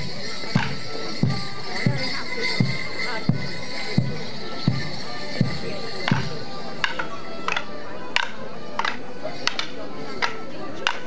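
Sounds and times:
folk music: 0.0s - 11.0s
wooden sticks clacking: 6.8s - 11.0s.

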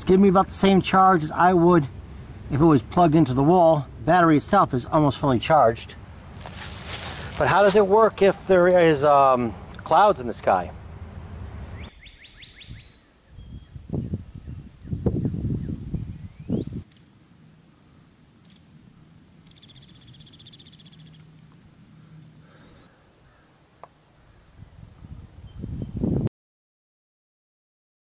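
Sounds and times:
wind rumbling on microphone: 10.7s - 17.0s, 24.2s - 26.3s
bird trills: 11.8s - 13.8s, 19.4s - 24.5s.

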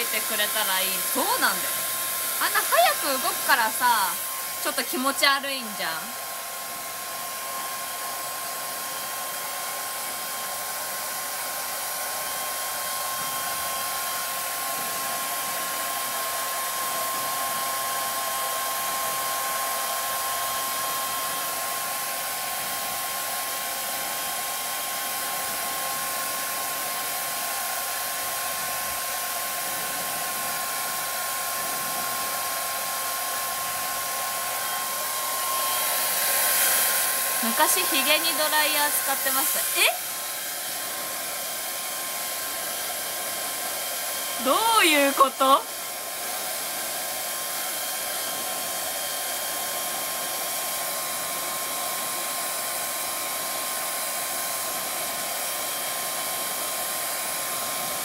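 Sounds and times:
hair dryer blowing: 0.0s - 58.0s.

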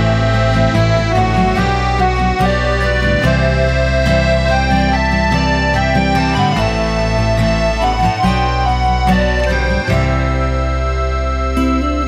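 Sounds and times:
accordion melody: 0.0s - 12.0s
bass line: 0.0s - 12.0s
strummed acoustic guitar: 0.0s - 12.0s.

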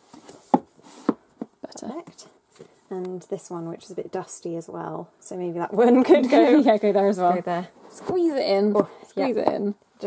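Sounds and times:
books knocking and sliding on shelf: 0.0s - 1.6s.

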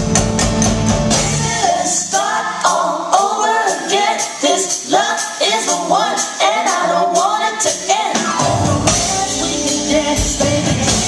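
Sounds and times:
sharp percussion hits: 0.0s - 1.7s
live band with drums: 0.0s - 2.8s, 7.2s - 11.0s
woman singing into microphone: 1.2s - 11.0s.

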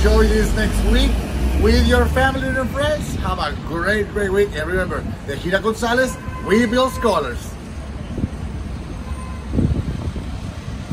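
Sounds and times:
road traffic rumble: 0.0s - 10.9s
wind: 0.0s - 10.9s.

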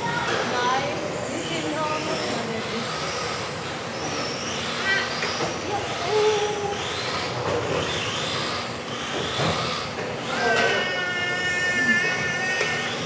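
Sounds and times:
electric rc car motors whining: 0.0s - 13.0s.

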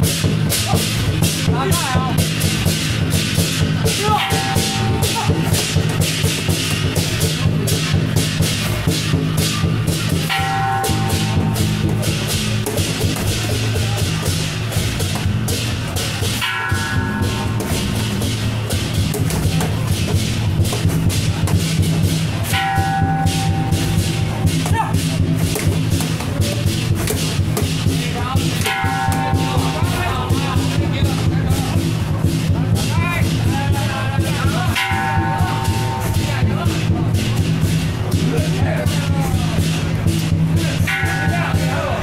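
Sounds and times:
cymbal clashes: 0.0s - 42.0s
drum beat: 0.0s - 42.0s
gongs: 0.0s - 42.0s
percussion band playing: 0.0s - 42.0s
metallic ringing tone: 4.2s - 5.8s, 10.3s - 13.7s, 16.3s - 19.1s, 22.5s - 25.2s, 28.6s - 31.3s.

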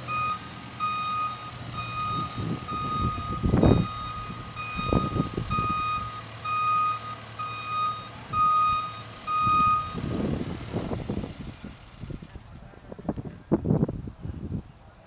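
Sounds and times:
reversing alarm beeping: 0.0s - 10.1s
diesel engine running: 0.0s - 15.0s.

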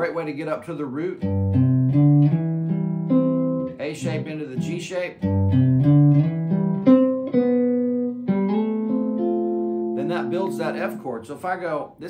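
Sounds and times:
clean electric guitar melody: 1.2s - 11.2s.

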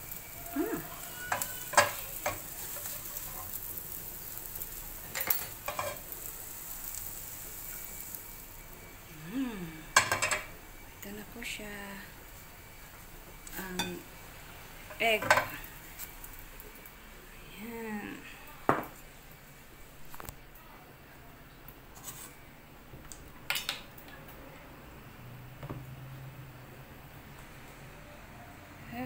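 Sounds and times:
dishes clinking: 10.0s - 10.5s.

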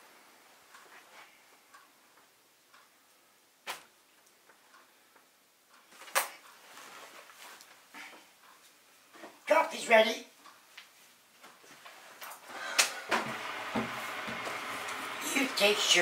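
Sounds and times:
faint rustling of papers: 0.6s - 9.5s, 10.4s - 12.5s.

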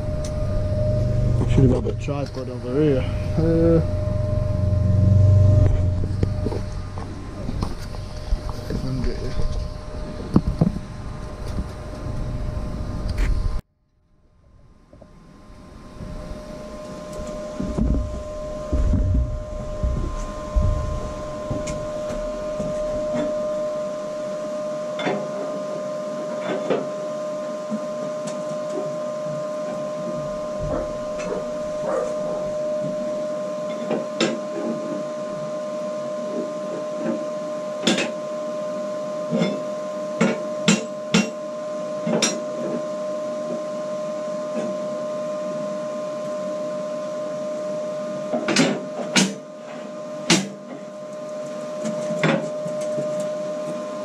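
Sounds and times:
steady machine hum: 0.0s - 54.0s.

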